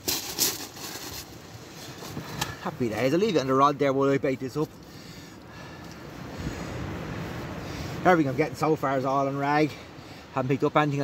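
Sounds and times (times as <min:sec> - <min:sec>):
waves on shingle beach: 0:04.9 - 0:11.0.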